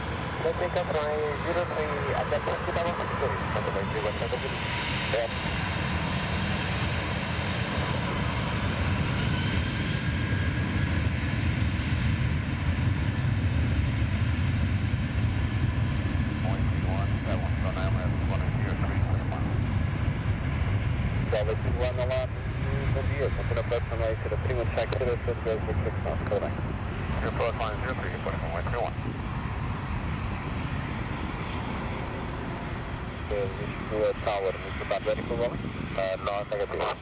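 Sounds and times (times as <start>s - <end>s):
jet engines running: 0.0s - 37.0s
voices: 0.3s - 5.3s, 16.4s - 19.6s, 21.3s - 29.0s, 32.0s - 37.0s.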